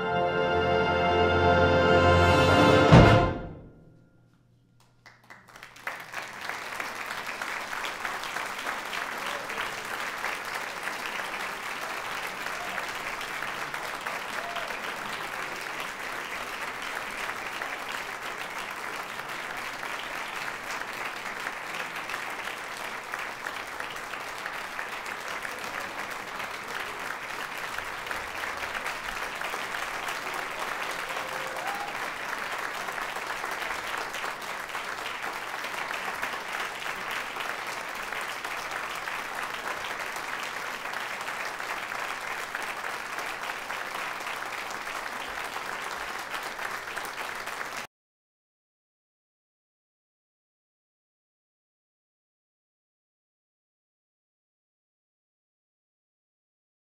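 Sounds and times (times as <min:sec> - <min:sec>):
audience applauding: 0:04.8 - 0:47.9.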